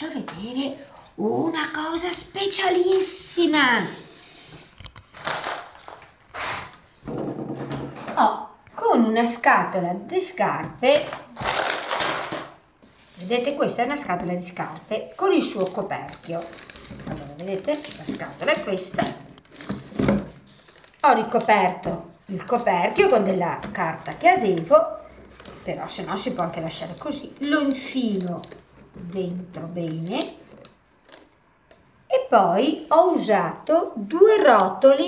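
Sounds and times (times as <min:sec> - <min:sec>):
objects rustling and scraping: 0:00.3 - 0:08.3, 0:10.8 - 0:31.9.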